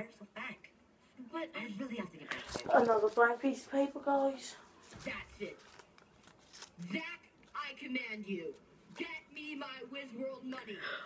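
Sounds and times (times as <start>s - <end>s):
paper rustling: 2.3s - 7.6s.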